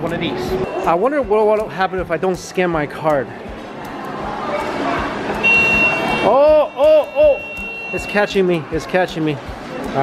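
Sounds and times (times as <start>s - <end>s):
steady high beep: 0.5s - 1.1s, 5.4s - 8.4s.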